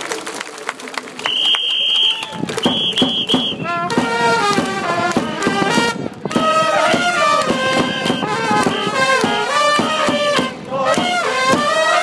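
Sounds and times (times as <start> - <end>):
scattered clapping: 0.0 - 11.8
crowd chatter: 0.0 - 12.0
shrill whistle blasts: 1.3 - 3.7, 7.8 - 9.0
trumpets playing a falling run: 1.4 - 12.0.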